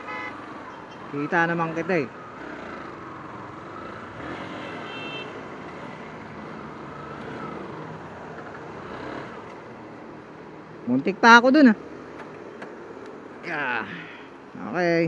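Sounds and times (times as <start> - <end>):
road and wind noise: 0.0 - 15.0.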